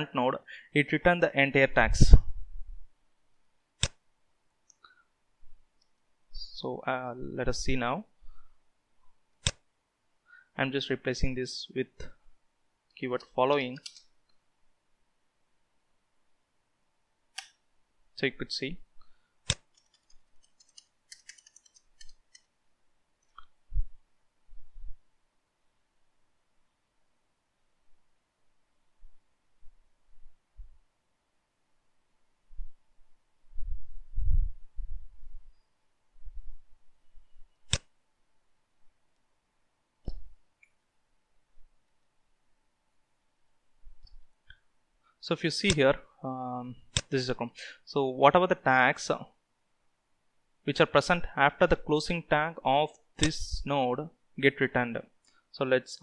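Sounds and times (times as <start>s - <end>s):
computer mouse click: 19.5s - 22.5s.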